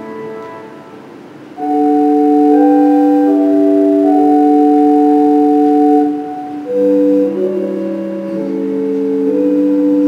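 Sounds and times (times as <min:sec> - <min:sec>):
organ playing slow chords: 0:00.0 - 0:10.0.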